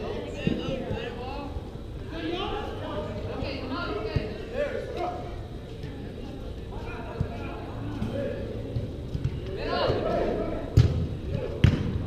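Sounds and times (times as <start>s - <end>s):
players calling: 0.0s - 11.6s.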